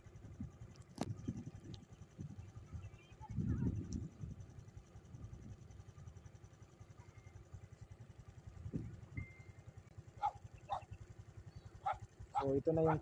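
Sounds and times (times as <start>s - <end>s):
faint low rumble: 0.0s - 13.0s
dog barking: 10.2s - 10.9s, 11.8s - 12.6s.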